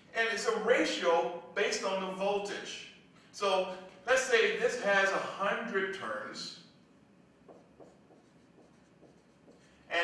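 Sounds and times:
marker writing on whiteboard: 0:07.4 - 0:09.9.

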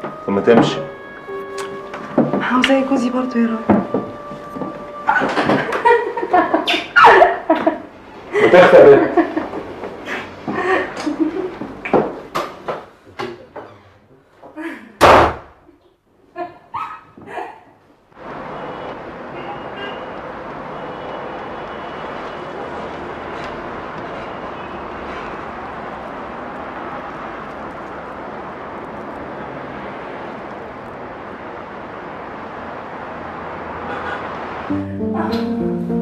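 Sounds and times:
street traffic ambience: 0:00.0 - 0:14.6, 0:15.4 - 0:36.0
loud thump: 0:15.0 - 0:15.5.

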